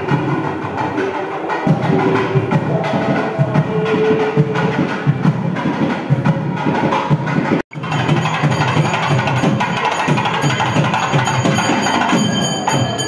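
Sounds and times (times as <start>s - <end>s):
music with fast percussion: 0.0s - 13.0s.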